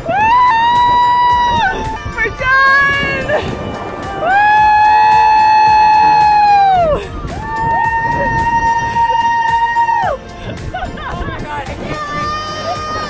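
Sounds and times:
music with a steady beat: 0.0 - 13.0.

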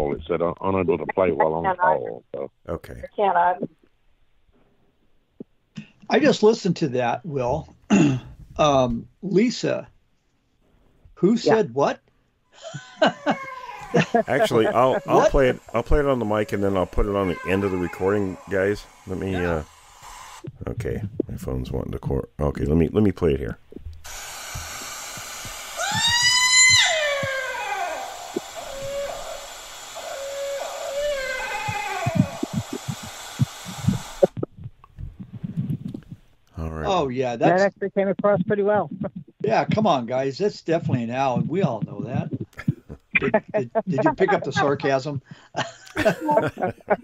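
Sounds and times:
recording hiss: 0.0 - 10.0, 10.6 - 47.0
person laughing: 12.6 - 18.4, 31.6 - 33.1, 41.5 - 45.0, 45.6 - 47.0
scream-like call: 13.1 - 19.4, 25.6 - 34.3
faint wavering falling calls: 25.3 - 34.3.

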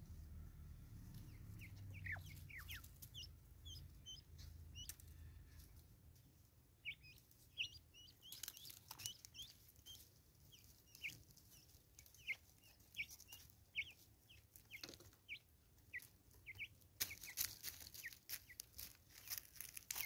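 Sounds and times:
birds clucking faintly: 0.0 - 20.0
beaks pecking taps: 14.6 - 15.4.

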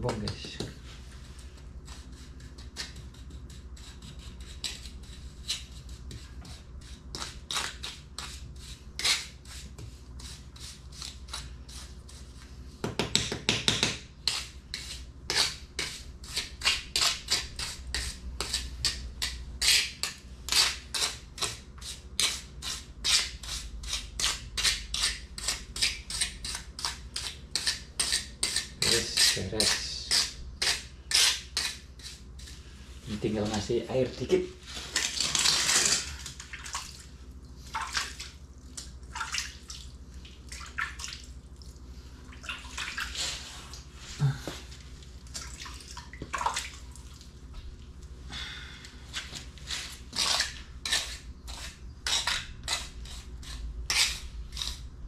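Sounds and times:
trowel scraping wet mortar: 49.1 - 54.8.

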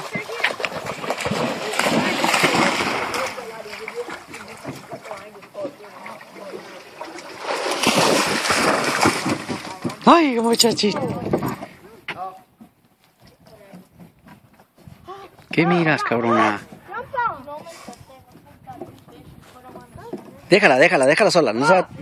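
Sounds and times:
dog splashing through water: 0.0 - 10.2.

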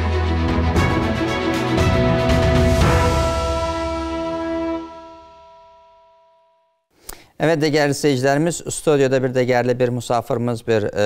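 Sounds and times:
theme music closing chord: 0.0 - 6.6.

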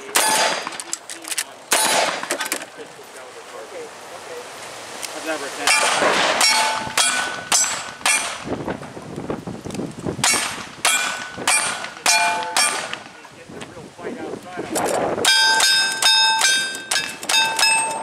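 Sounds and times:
rifle shots: 0.0 - 0.9, 1.7 - 2.6, 5.7 - 8.5, 10.2 - 13.1
steel target ringing: 5.6 - 8.4, 10.2 - 12.9, 15.2 - 18.0.

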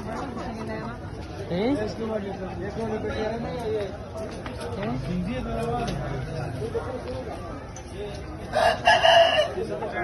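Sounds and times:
rooster crowing: 8.5 - 9.6.

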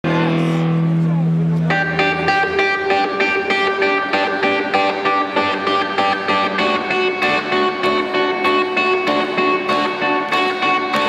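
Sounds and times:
distorted electric guitar: 0.0 - 11.0
hard rock band playing live: 0.0 - 11.0.

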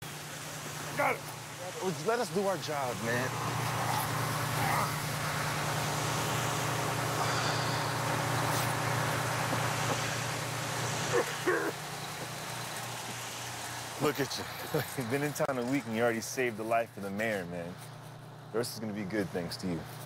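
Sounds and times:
fire hose spraying water: 0.0 - 17.7
fire engine rumbling: 0.0 - 20.0.

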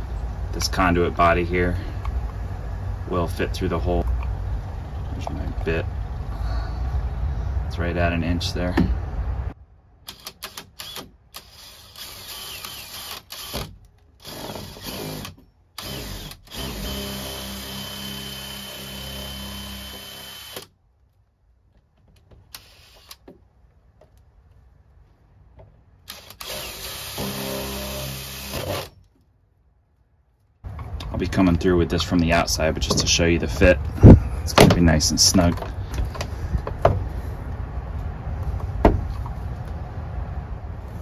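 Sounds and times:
cordless drill boring through wood: 10.1 - 20.7, 22.5 - 23.2, 26.1 - 29.0.

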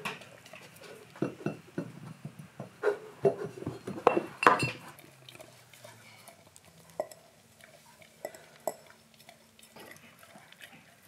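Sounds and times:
glass jar clinking and bumping: 3.7 - 4.8
dog licking: 4.8 - 11.0.

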